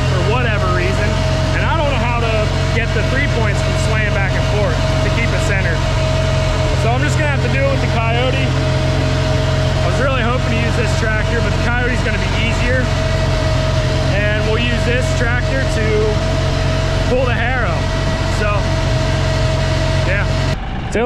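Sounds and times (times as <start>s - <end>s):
man talking: 0.0s - 6.0s, 6.7s - 8.7s, 9.8s - 13.1s, 14.0s - 16.4s, 17.0s - 18.8s, 20.0s - 21.0s
tractor engine idling: 0.0s - 21.0s.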